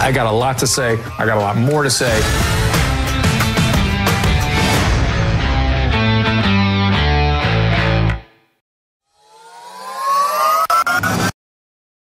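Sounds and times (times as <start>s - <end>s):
synthesized riser: 9.0s - 11.4s.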